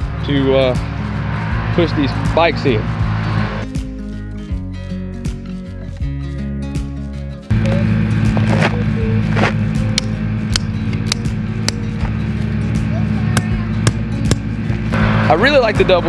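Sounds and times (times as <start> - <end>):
engine drone: 0.0 - 4.4, 7.4 - 16.0
background music: 0.0 - 16.0.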